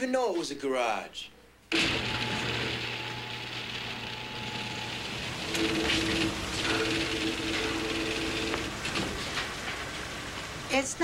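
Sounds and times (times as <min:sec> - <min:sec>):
train rumbling past: 0:04.6 - 0:11.0.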